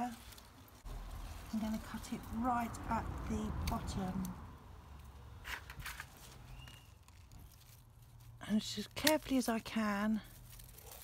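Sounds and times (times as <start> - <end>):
leaves and stems rustling: 0.0 - 11.0.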